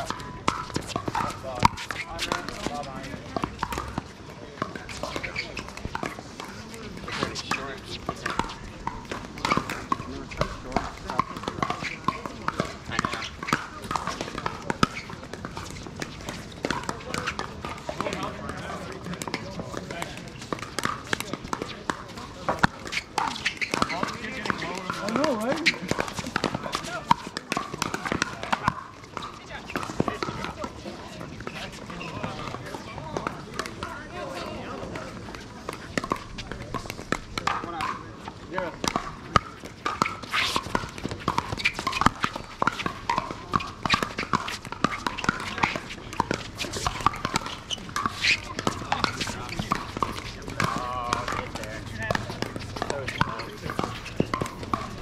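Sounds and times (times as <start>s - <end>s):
paddles hitting plastic balls: 0.0s - 55.0s.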